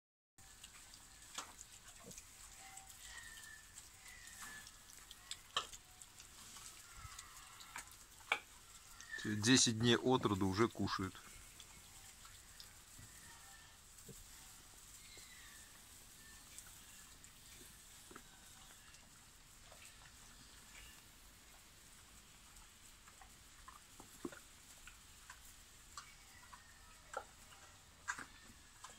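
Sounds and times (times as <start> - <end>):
piglets rustling in straw: 0.4 - 28.9.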